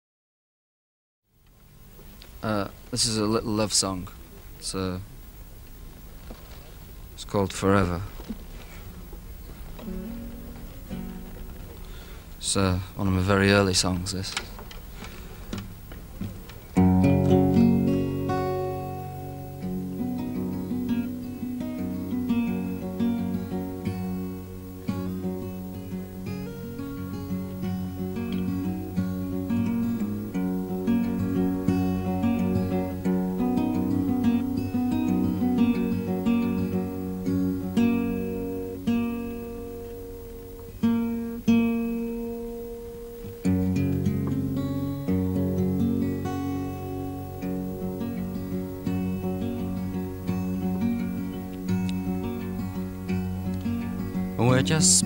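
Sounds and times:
fingerpicked acoustic guitar: 0:04.0 - 0:55.0.

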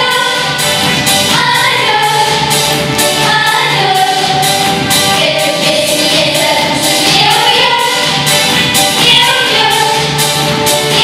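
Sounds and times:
girls singing into microphones: 0:00.0 - 0:11.0
musical accompaniment: 0:00.0 - 0:11.0.

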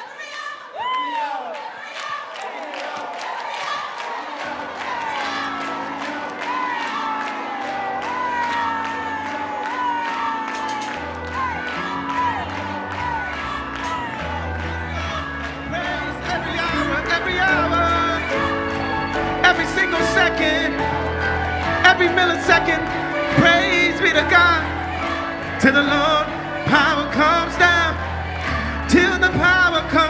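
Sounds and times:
crowd cheering: 0:00.0 - 0:30.0
live band bass and keyboard: 0:04.7 - 0:30.0.

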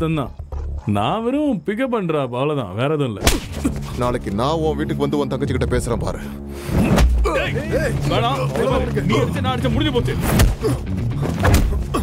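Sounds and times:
background music score: 0:03.3 - 0:12.0
voices speaking: 0:07.2 - 0:10.3.

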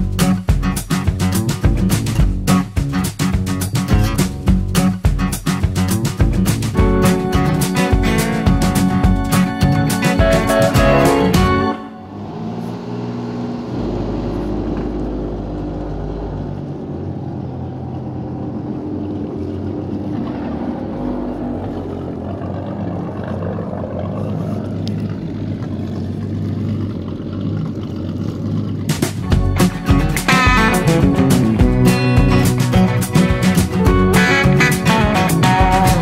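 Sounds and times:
guitar music: 0:00.0 - 0:12.2, 0:28.9 - 0:36.0
exhaust spitting water: 0:00.0 - 0:36.0
boat engine idling: 0:01.1 - 0:36.0.

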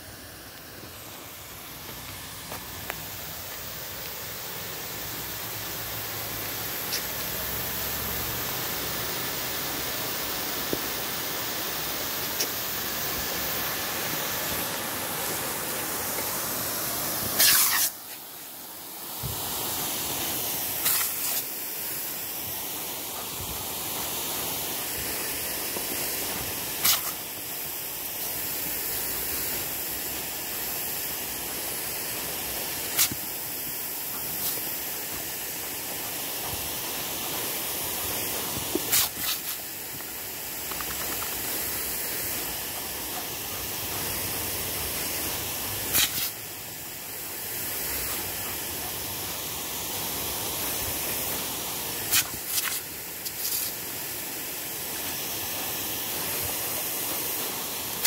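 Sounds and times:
sprinkler spraying water: 0:00.0 - 0:58.0.

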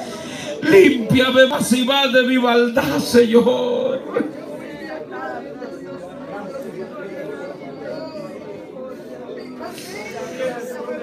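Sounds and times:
congregation praying aloud: 0:00.0 - 0:11.0.

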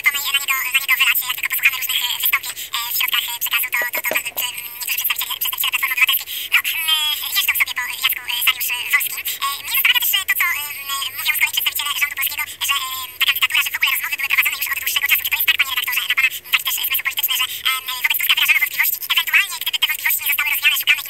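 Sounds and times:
tinny telephone-like voice talking: 0:03.8 - 0:04.6.

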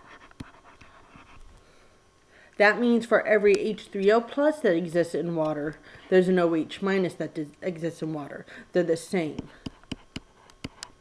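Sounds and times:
stylus scratching on tablet: 0:00.0 - 0:01.5.

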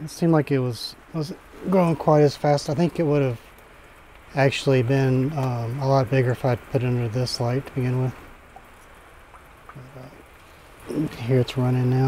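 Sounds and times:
faint watery hiss of spray: 0:00.0 - 0:12.0.

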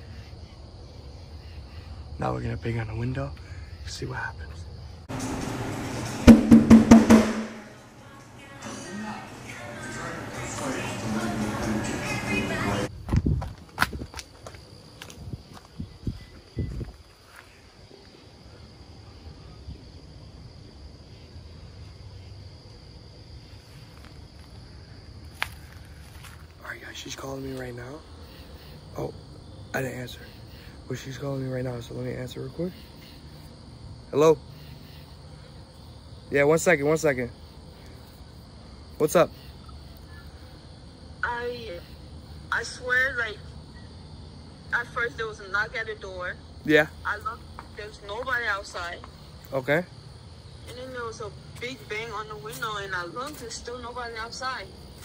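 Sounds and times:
crickets chirring: 0:00.0 - 0:05.9, 0:07.5 - 0:55.0.

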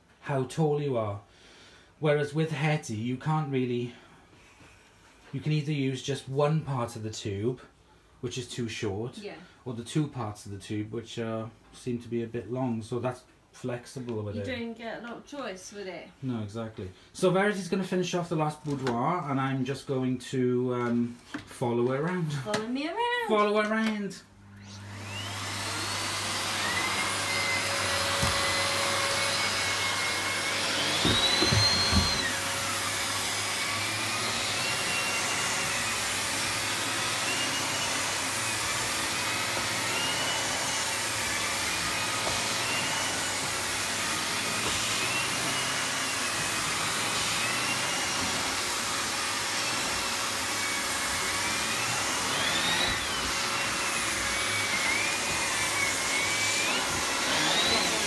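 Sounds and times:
vacuum cleaner motor whining: 0:23.4 - 0:58.0.

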